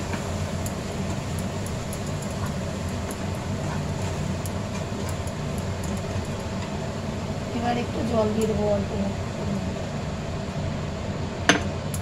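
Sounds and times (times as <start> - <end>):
wooden spatula stirring: 0.0 - 6.8
food frying in a pan: 0.0 - 12.0
steady low hum: 0.0 - 12.0.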